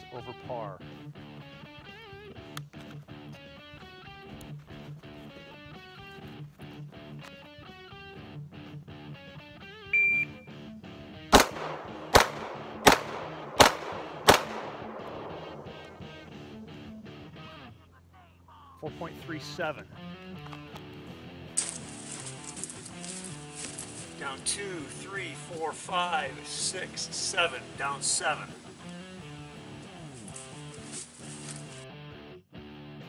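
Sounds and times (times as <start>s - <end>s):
guitar background music: 0.0s - 17.9s, 18.8s - 33.0s
shot timer beep: 9.9s - 10.5s
pistol shots: 11.3s - 16.2s.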